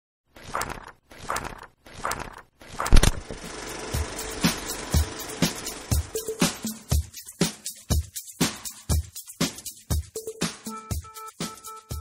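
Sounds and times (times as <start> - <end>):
music bed: 3.6 - 12.0.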